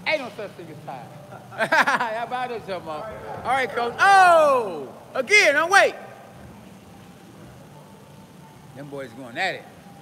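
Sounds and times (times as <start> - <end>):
faint steady hum: 0.0 - 10.0
gym room noise: 0.0 - 10.0.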